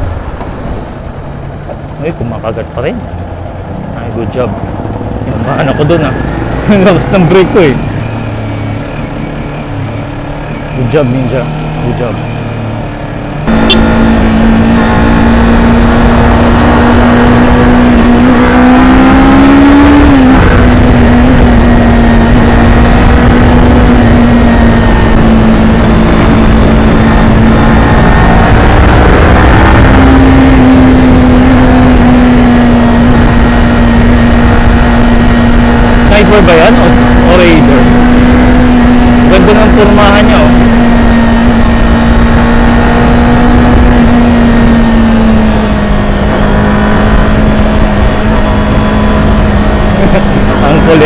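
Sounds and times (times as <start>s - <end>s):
wind rushing over microphone: 0.0s - 2.3s, 13.4s - 51.0s
motorcycle engine running hard: 0.0s - 51.0s.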